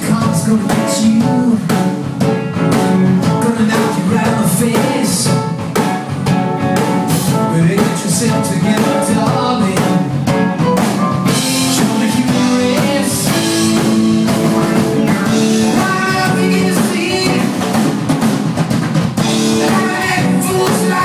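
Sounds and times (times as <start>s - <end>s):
bass guitar: 0.0s - 21.0s
drum kit: 0.0s - 21.0s
electric guitars: 0.0s - 21.0s.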